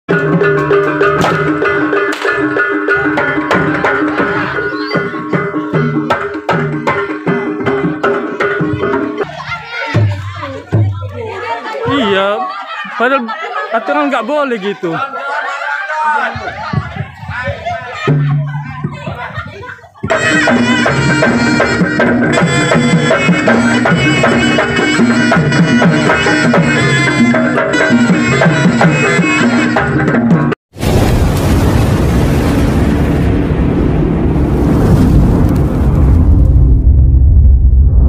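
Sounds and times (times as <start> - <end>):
traditional dance music: 0.1 - 30.6
crowd voices: 1.6 - 26.8.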